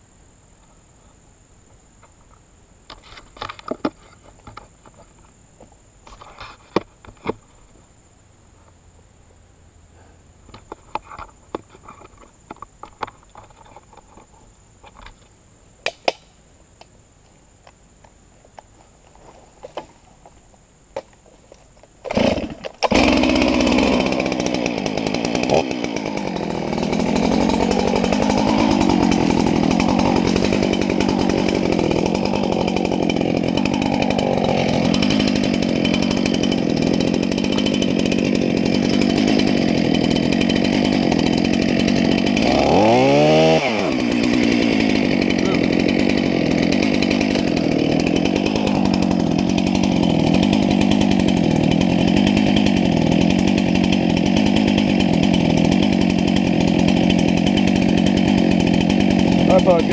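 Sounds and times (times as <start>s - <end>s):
chainsaw cutting wood: 22.0s - 59.9s.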